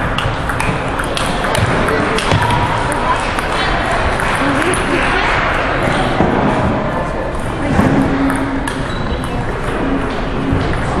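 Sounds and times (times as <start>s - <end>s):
sports hall ambience: 0.0s - 11.0s.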